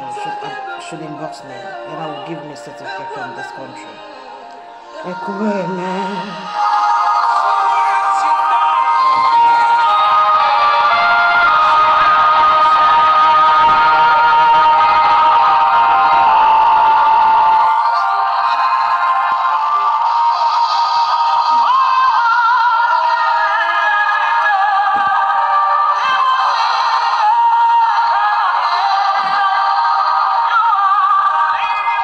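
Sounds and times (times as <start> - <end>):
song with singing: 0.0 - 32.0.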